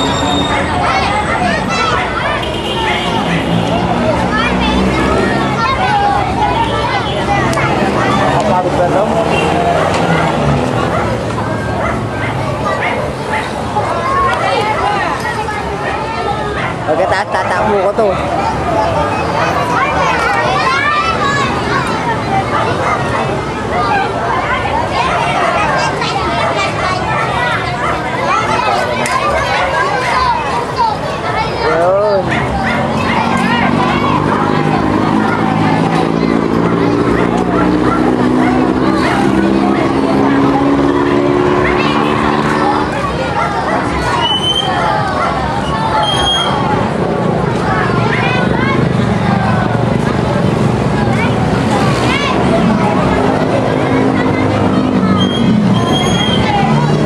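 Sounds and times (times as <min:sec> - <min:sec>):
children chattering: 0:00.0 - 0:57.0
high yelping calls: 0:43.6 - 0:46.6.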